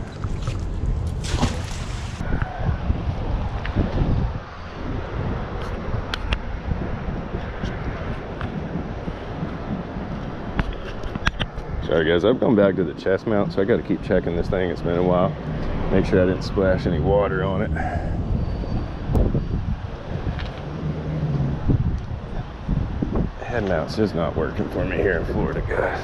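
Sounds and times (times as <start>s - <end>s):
wind on microphone: 0.0s - 26.0s
magnet splashing into water: 0.1s - 2.3s.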